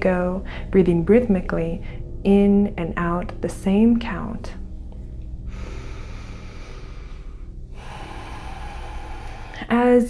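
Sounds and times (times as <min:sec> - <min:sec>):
breath through the nose: 0:05.5 - 0:09.7.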